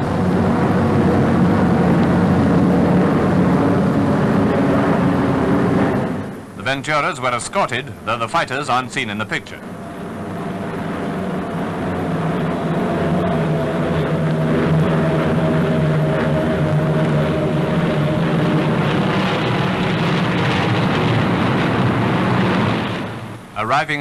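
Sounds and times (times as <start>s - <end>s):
propeller plane engines droning: 0.0s - 24.0s.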